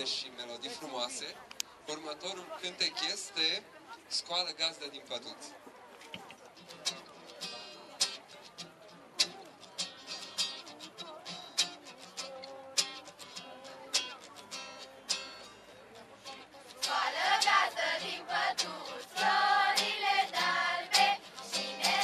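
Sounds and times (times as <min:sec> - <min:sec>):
acoustic guitar strumming: 0:06.6 - 0:22.0
children's choir singing: 0:16.8 - 0:22.0.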